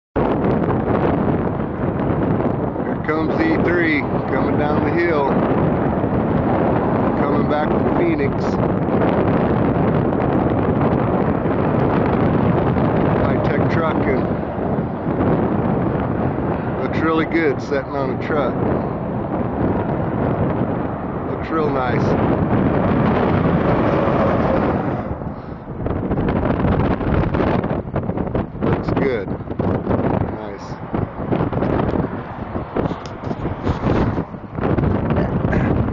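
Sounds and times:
vehicle rumble on highway: 0:00.2 - 0:35.9
wind blowing across microphone: 0:00.2 - 0:35.9.

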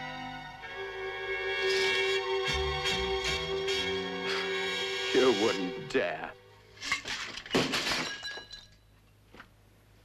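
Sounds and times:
glass smashing: 0:06.8 - 0:08.8
glass pieces tinkling: 0:06.8 - 0:08.9.

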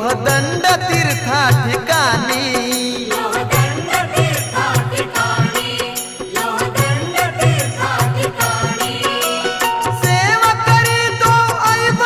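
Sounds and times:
devotional song melody: 0:00.0 - 0:12.0
steady percussion beat: 0:00.0 - 0:12.0.

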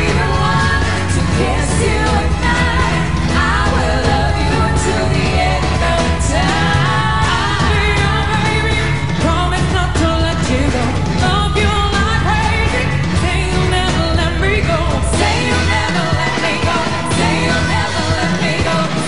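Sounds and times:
backing track with steady beat: 0:00.0 - 0:19.0
women singing pop song: 0:00.0 - 0:19.0.

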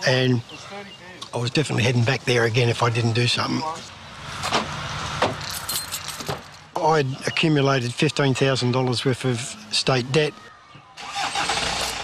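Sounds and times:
car keys jangling: 0:05.4 - 0:06.4.

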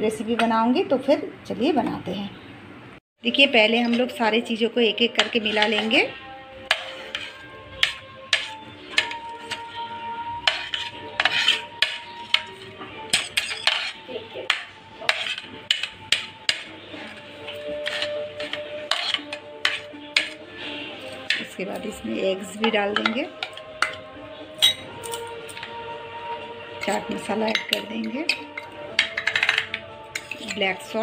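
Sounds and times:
soft background music: 0:00.0 - 0:02.5, 0:03.2 - 0:31.0
spoon clinking on ceramic and glass: 0:10.5 - 0:16.6, 0:17.8 - 0:20.4, 0:23.0 - 0:25.7, 0:26.8 - 0:30.6.

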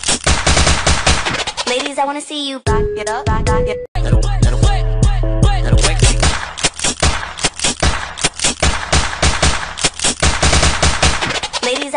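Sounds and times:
machine-gun shots: 0:06.2 - 0:11.6.

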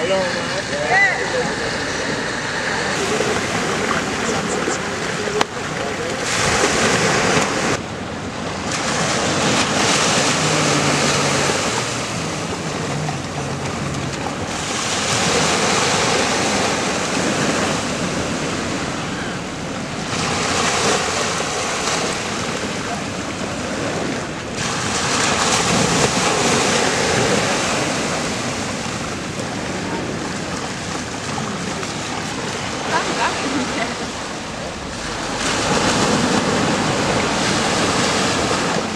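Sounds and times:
small waves washing on sand: 0:00.0 - 0:38.9.

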